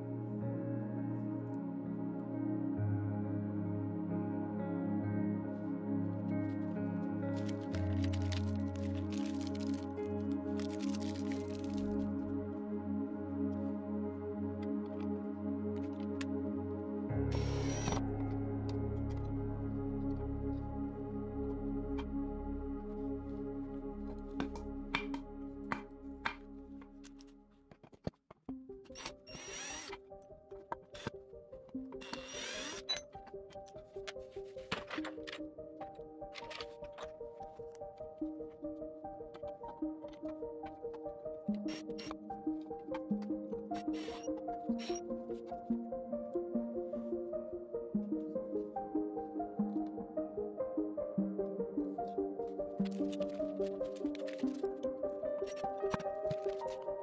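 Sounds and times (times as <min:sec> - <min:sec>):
calm instrumental music: 0:00.0 - 0:27.8, 0:28.5 - 0:57.0
plastic bag crinkling: 0:07.3 - 0:12.1
cordless drill driving screws: 0:17.4 - 0:18.0, 0:29.0 - 0:30.0, 0:32.0 - 0:33.0, 0:44.0 - 0:44.3.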